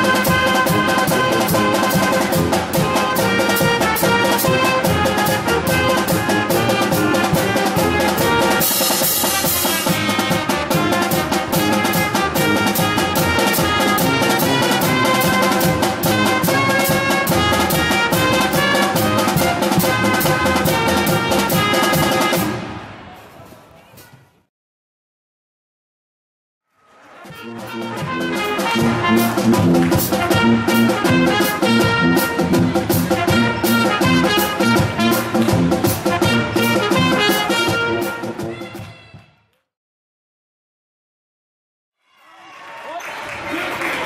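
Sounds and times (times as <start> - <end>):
pep band playing upbeat tune: 0.0 - 22.8, 27.2 - 39.0.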